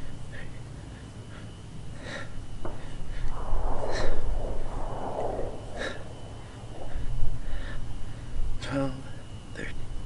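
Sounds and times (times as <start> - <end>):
man breathing hard: 0.4 - 3.3
wind rumbling on microphone: 2.6 - 8.6.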